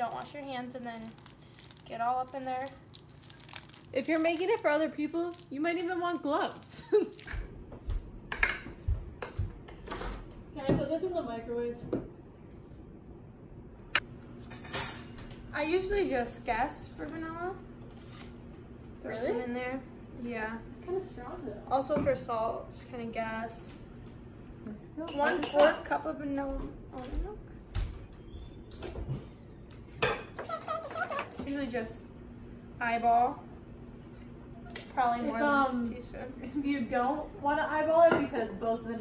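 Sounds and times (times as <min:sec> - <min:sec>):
metal kitchenware clinking: 0:14.5 - 0:15.5.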